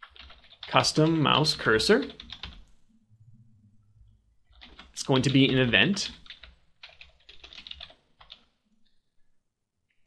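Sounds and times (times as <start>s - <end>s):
keyboard typing clicks: 6.2s - 8.5s.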